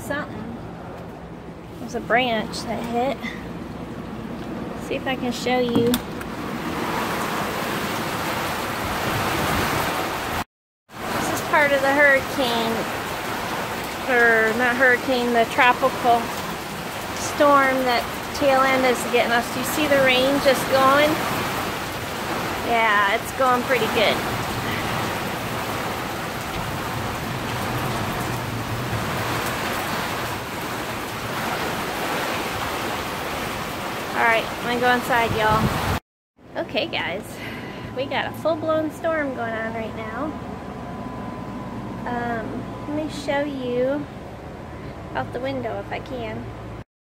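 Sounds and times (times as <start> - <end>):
heavy rain falling: 5.6 - 10.4, 11.0 - 36.0.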